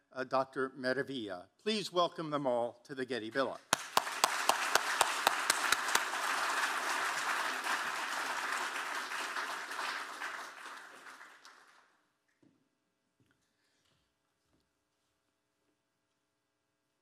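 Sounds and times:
sharp single claps: 3.7s - 6.1s
audience applauding: 3.7s - 12.0s.

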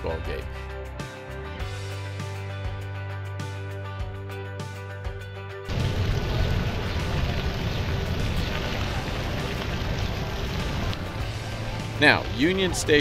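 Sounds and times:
fountain jets splashing on stone: 5.7s - 11.3s, 12.0s - 13.0s.

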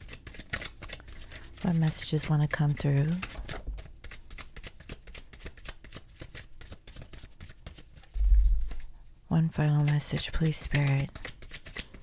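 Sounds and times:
cards being shuffled: 0.0s - 8.9s, 9.8s - 12.0s.

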